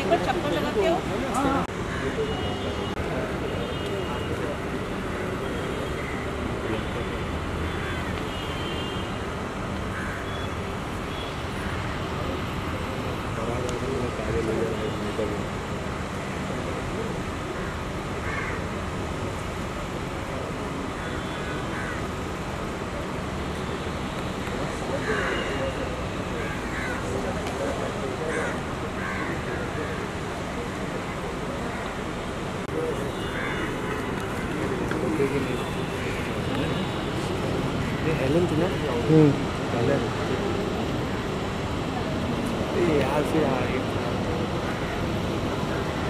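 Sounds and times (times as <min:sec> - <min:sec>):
road traffic hum: 0:00.0 - 0:46.0.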